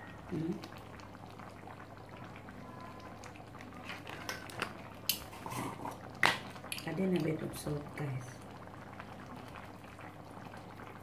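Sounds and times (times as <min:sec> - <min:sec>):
curry bubbling in a frying pan: 0:00.0 - 0:11.0.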